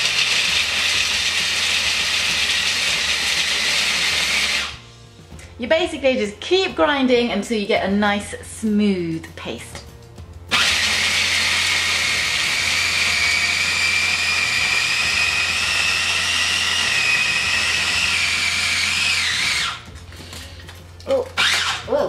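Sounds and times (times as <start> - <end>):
food processor grinding nuts: 0.0 - 4.8, 10.5 - 21.9.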